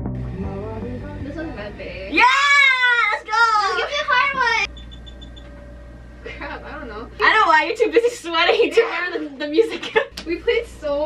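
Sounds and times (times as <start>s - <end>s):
faint background music: 0.3s - 5.1s.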